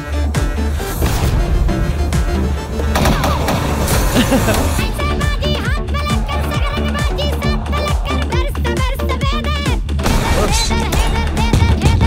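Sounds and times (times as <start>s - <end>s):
loud music with heavy bass: 0.0s - 12.0s.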